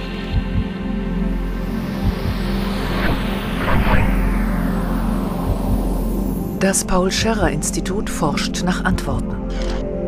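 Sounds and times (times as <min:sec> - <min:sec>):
background music sustained tones: 0:00.0 - 0:10.0
whoosh sweeping down in pitch: 0:01.8 - 0:06.6.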